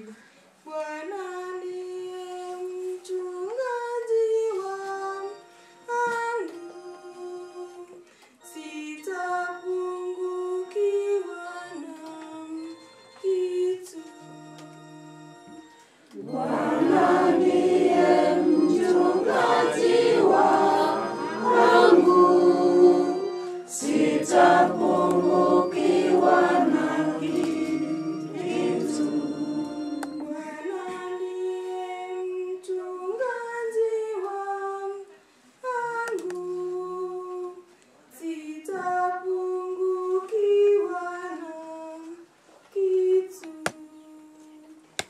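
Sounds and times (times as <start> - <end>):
woman singing a hymn: 0.0 - 15.6, 16.2 - 45.0
group singing a hymn: 16.1 - 35.0.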